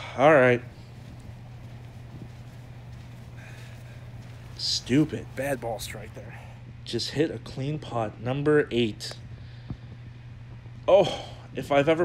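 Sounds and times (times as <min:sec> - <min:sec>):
faint outdoor background noise: 0:00.0 - 0:12.0
steady low hum: 0:00.0 - 0:12.0.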